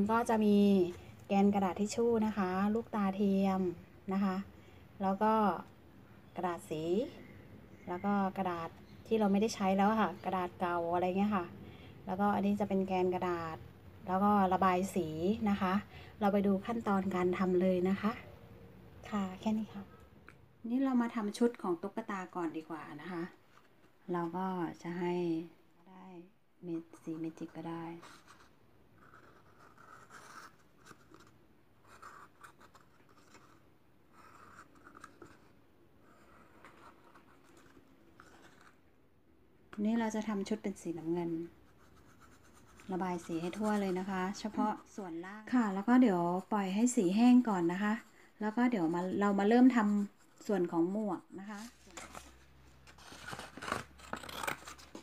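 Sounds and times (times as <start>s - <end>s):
marker scratching on cardboard: 27.0s - 38.8s, 41.0s - 44.9s
scissors snipping paper: 53.0s - 55.0s.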